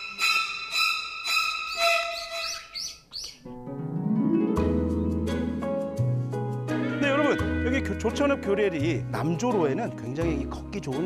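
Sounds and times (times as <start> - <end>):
high-pitched chirping call: 0.0 - 3.5
plucked harp music: 3.5 - 6.0.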